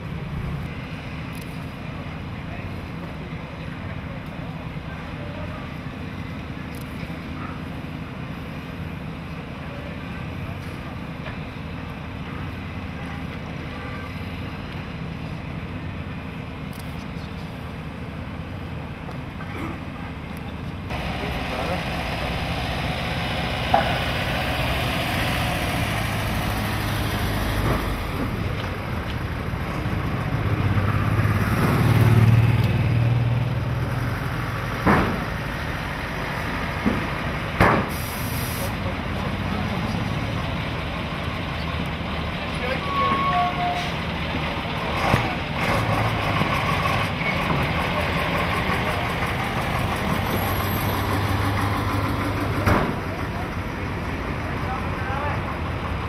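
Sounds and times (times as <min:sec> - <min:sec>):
diesel engines driving past: 0:00.0 - 0:56.0
air-brake release: 0:37.8 - 0:38.8.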